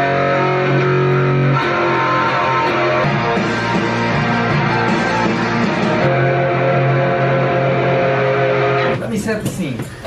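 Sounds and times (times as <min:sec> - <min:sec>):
rock music with electric guitar: 0:00.0 - 0:09.0.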